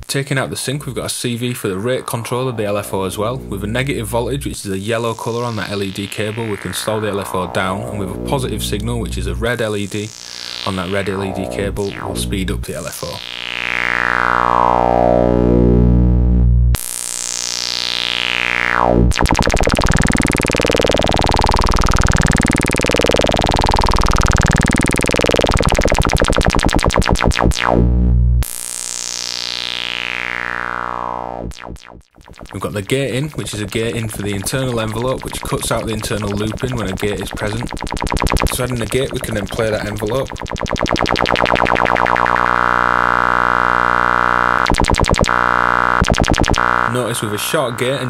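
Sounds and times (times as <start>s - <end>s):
synthesizer tone with rising filter sweeps: 1.7s - 48.0s.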